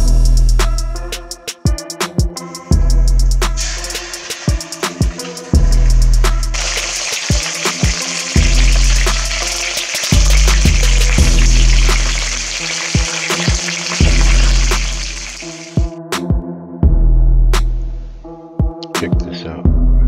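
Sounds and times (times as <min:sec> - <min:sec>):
music with heavy bass-drum beat: 0:00.0 - 0:19.0
fish sizzling in hot oil: 0:03.6 - 0:15.9.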